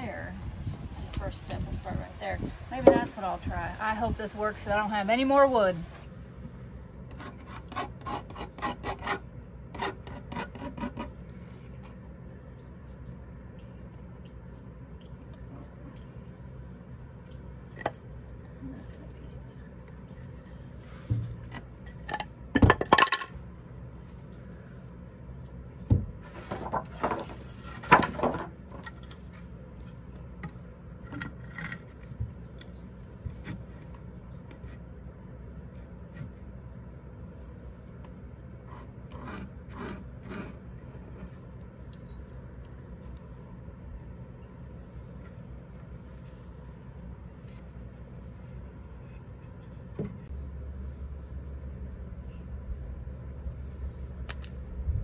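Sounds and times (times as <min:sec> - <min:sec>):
low background hum: 0:00.0 - 0:55.0
wooden boards knocking and scraping: 0:21.0 - 0:21.7, 0:25.9 - 0:28.9.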